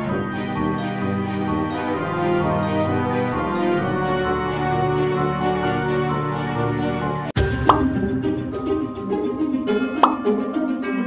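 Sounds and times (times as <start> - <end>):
background music: 0.0 - 11.0
light music: 0.0 - 11.0.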